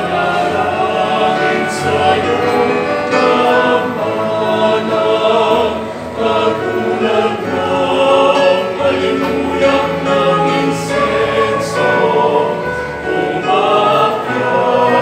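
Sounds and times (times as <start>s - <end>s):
choir singing a hymn: 0.0s - 15.0s
digital piano: 0.0s - 15.0s.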